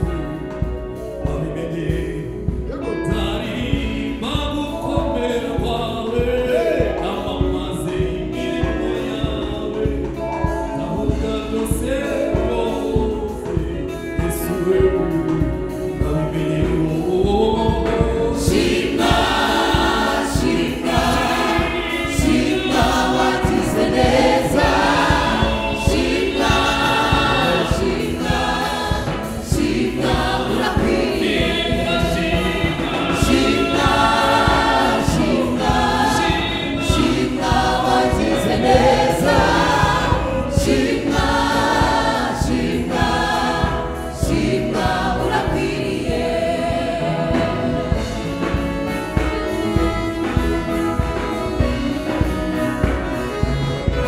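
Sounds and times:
drum kit beat: 0.0s - 54.0s
gospel choir singing: 0.0s - 54.0s
keyboard: 0.0s - 54.0s.

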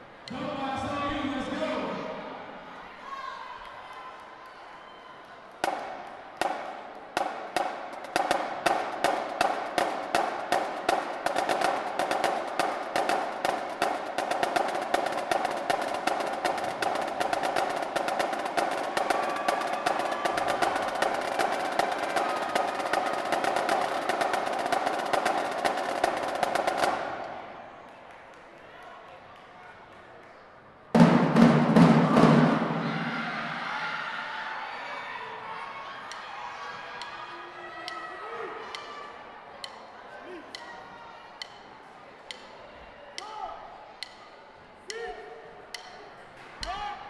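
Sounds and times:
marching drumline cadence: 5.6s - 27.7s, 31.0s - 33.8s.

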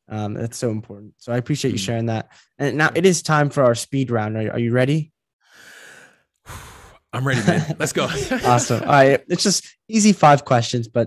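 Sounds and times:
person breathing: 5.4s - 7.1s.

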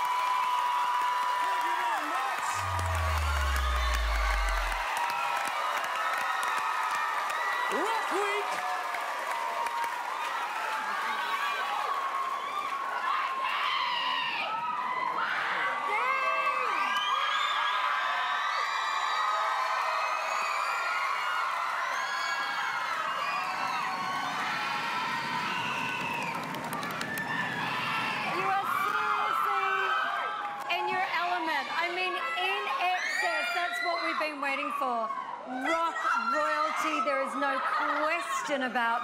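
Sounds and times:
crowd roar: 0.0s - 9.9s
audience cheering and screaming: 0.0s - 30.9s.

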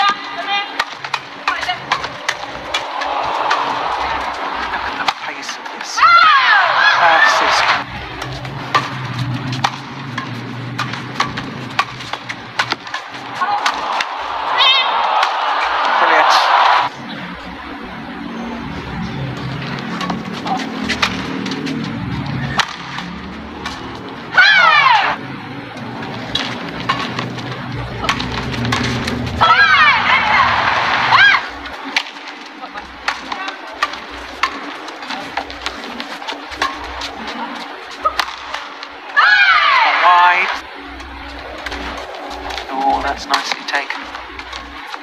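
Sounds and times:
rackets striking shuttlecock: 7.7s - 14.4s, 22.5s - 23.9s, 33.0s - 37.1s, 38.0s - 38.9s.

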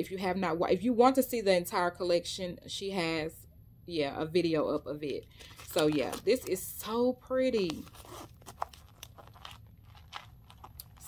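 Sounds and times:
nails clicking on zip pouch: 7.6s - 11.0s.

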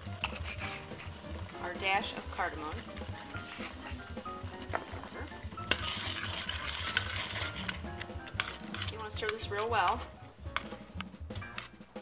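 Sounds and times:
metal spoon scraping saucepan: 0.0s - 10.8s.

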